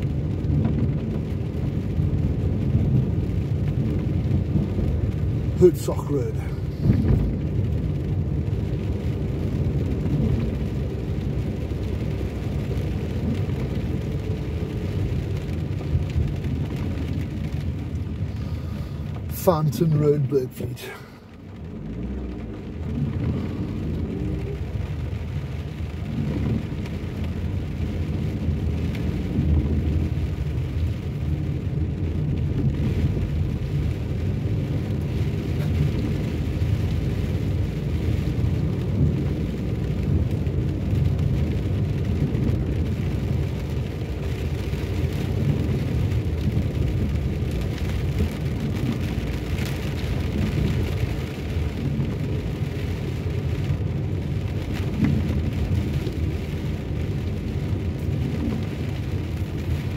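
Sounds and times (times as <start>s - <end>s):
car engine and tyre rumble: 0.0s - 59.9s
rain: 0.0s - 59.9s
tyres hissing on wet road: 0.0s - 59.9s.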